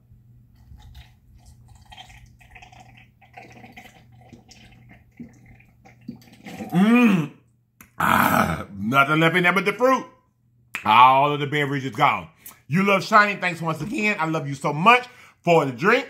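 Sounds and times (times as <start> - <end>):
man gulping a drink: 0.6 - 8.7
loud drawn-out vocal exclamation: 8.0 - 8.8.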